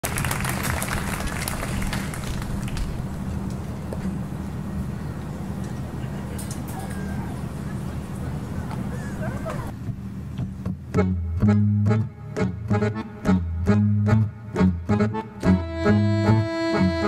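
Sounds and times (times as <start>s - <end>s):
crowd talking: 4.4s - 9.8s.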